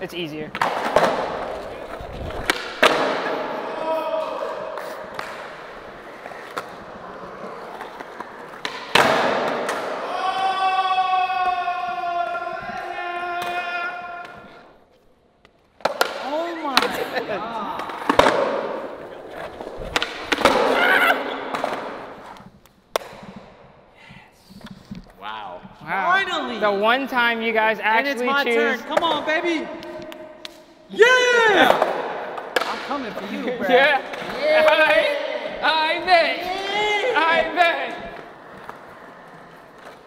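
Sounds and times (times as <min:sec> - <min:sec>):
skateboard on concrete: 0:00.5 - 0:03.6, 0:04.7 - 0:10.0, 0:17.8 - 0:23.6, 0:34.0 - 0:40.0
skaters shouting: 0:02.8 - 0:14.7, 0:20.3 - 0:22.2, 0:30.9 - 0:32.2, 0:33.2 - 0:40.0.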